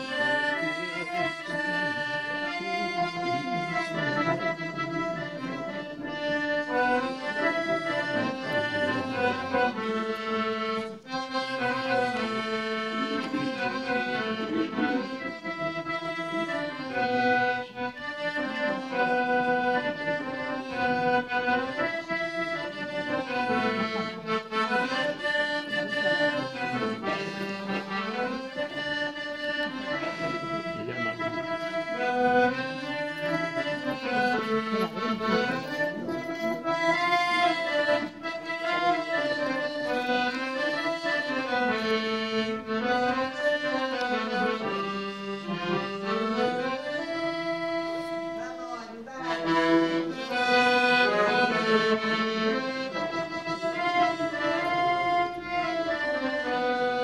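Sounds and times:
solo accordion melody: 0.0 - 57.0.

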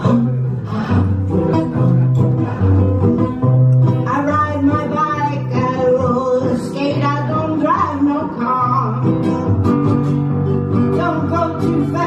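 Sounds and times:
low bass notes: 0.0 - 4.1
acoustic guitars strumming: 0.0 - 12.0.

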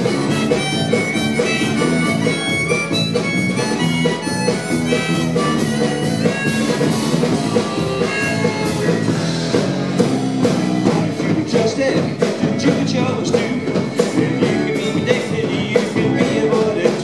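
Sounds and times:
bass: 0.0 - 17.0
harmonica solo: 0.0 - 17.0
steady drum beat: 0.0 - 17.0.

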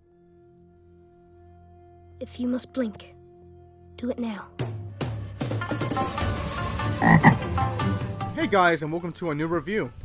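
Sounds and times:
frog croaking: 6.9 - 7.5.

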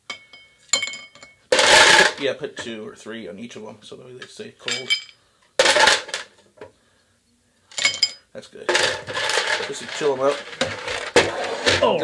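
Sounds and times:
rough rattling noise: 1.5 - 2.3, 8.7 - 12.0.

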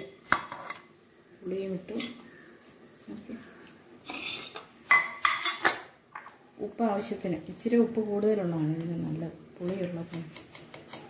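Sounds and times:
soft scrape: 4.1 - 4.6.

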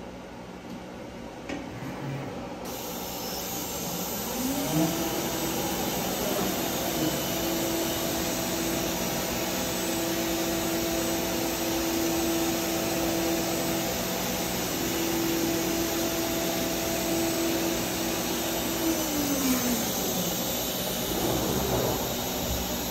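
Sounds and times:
router spindle whining: 2.7 - 22.9.

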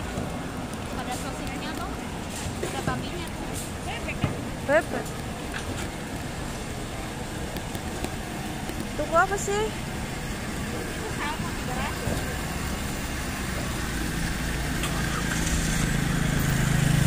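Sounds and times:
street traffic noise: 0.0 - 17.0.

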